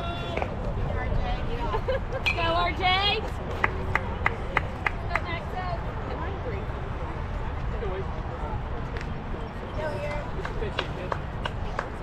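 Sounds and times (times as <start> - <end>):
hand claps: 3.6 - 5.3, 10.4 - 12.0.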